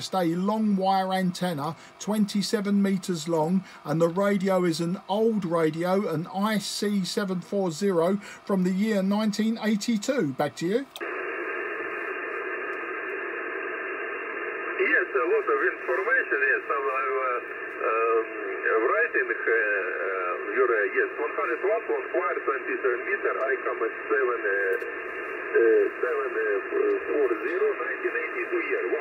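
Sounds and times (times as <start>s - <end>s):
shortwave radio hiss: 0.0s - 29.0s
distant radio voice: 14.7s - 29.0s.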